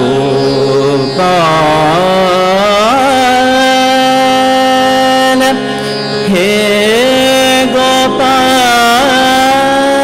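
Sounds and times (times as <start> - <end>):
harmonium: 0.0 - 10.0
man singing long note: 0.0 - 10.0.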